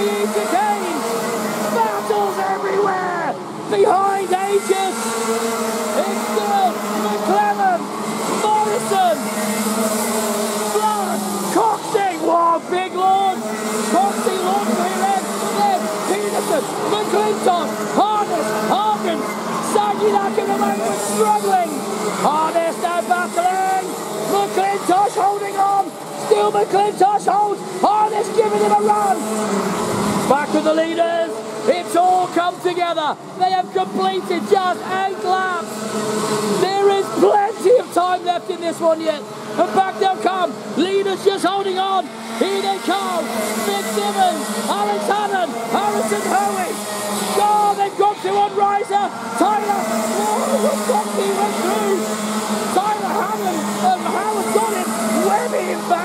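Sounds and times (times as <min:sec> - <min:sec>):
kart engines racing: 0:00.0 - 0:56.0.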